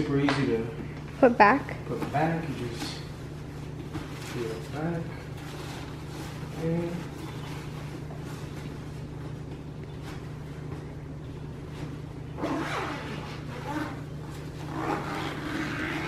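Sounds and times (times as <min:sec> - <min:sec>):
steady low hum: 0:00.0 - 0:16.0
fabric rustling and shuffling: 0:01.2 - 0:16.0.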